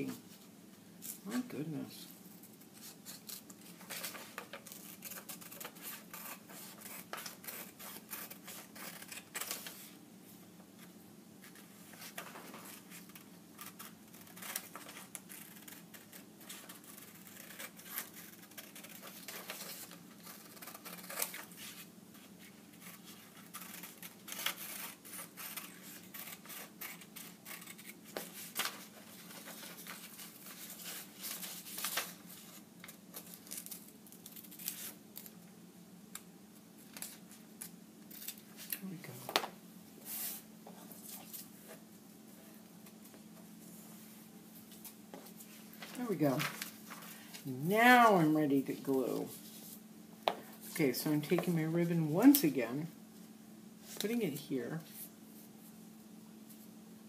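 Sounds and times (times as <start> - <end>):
scissors snipping paper: 22.8 - 32.2.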